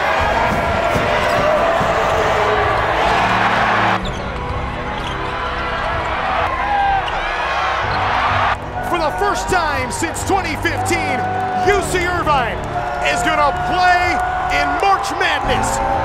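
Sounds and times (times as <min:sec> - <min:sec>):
basketball bouncing: 0:00.0 - 0:02.5
loud arena crowd noise: 0:00.0 - 0:16.0
music playing: 0:00.0 - 0:16.0.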